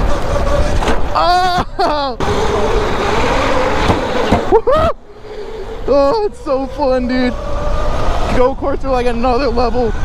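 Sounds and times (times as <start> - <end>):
go-kart rushing noise: 0.0 - 10.0
person shouting: 1.1 - 2.2, 4.5 - 5.0.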